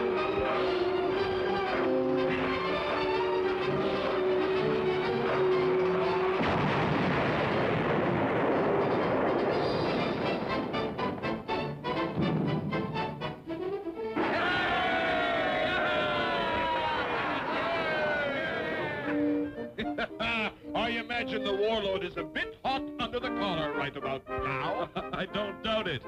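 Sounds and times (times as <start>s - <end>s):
orchestral music with sliding notes: 0.0s - 6.5s, 9.5s - 14.5s, 17.9s - 26.0s
cartoon explosion with crackles: 5.2s - 13.4s.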